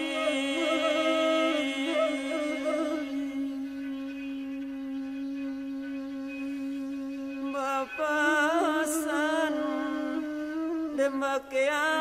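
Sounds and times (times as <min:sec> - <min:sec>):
long held wind instrument note: 0:00.0 - 0:11.2.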